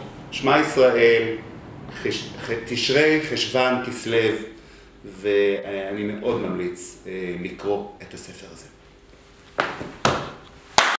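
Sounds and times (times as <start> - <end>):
sharp hand claps: 9.6 - 11.0.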